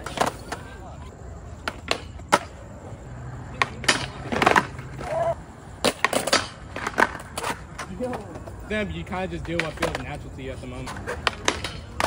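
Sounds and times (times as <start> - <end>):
skateboard wooden clacks: 0.0 - 0.8, 1.6 - 2.6, 3.4 - 8.6, 9.4 - 10.2, 10.8 - 12.0
skateboard wheels rolling on concrete: 0.0 - 12.0.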